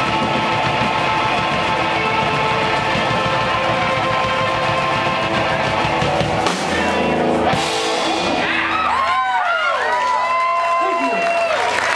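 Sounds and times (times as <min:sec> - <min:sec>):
live band playing instrumental: 0:00.0 - 0:09.4.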